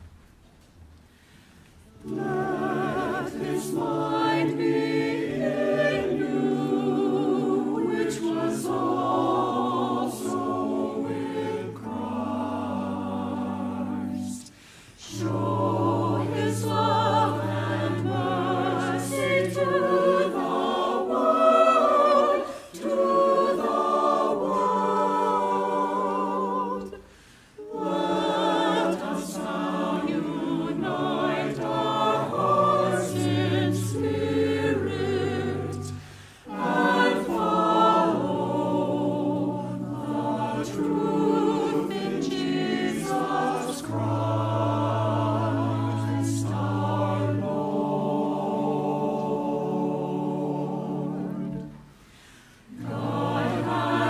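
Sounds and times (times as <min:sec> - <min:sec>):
church choir singing: 0:01.8 - 0:54.0.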